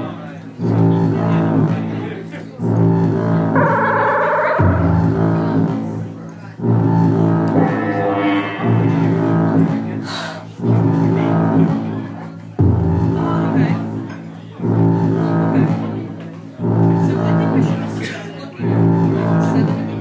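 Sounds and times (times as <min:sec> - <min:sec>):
deep bass note struck: 0:03.6 - 0:05.9, 0:07.3 - 0:10.0.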